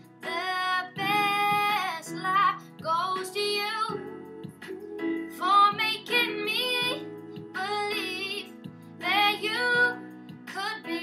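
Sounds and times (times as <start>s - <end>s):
girl singing a pop ballad: 0.0s - 11.0s
low instrumental backing track: 0.0s - 11.0s.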